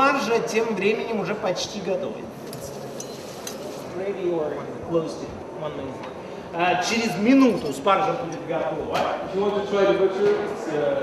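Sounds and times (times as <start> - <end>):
steady low hiss: 0.0 - 11.0
metal utensils clinking on pot: 2.4 - 3.8.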